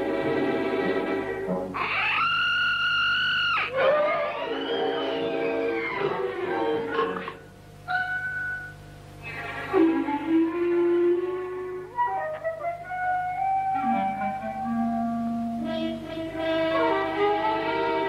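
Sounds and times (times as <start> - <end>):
flute and woodwinds playing held notes: 13.7 - 18.0.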